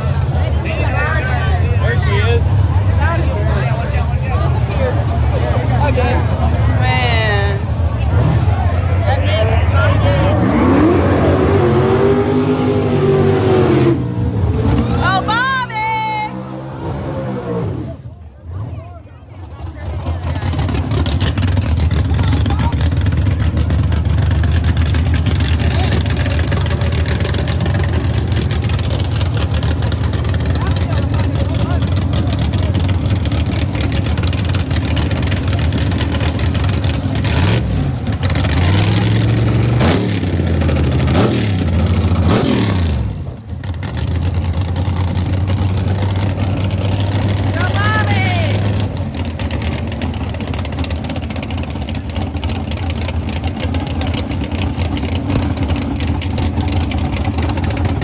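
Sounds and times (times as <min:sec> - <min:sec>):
race car engines droning: 0:00.0 - 0:58.0
race car revving: 0:00.0 - 0:58.0.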